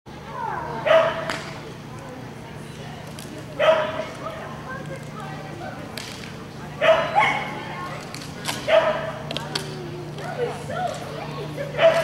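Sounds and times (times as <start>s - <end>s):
dog barking: 0.8s - 1.3s, 3.6s - 4.0s, 6.8s - 7.6s, 8.7s - 9.2s, 11.8s - 12.0s.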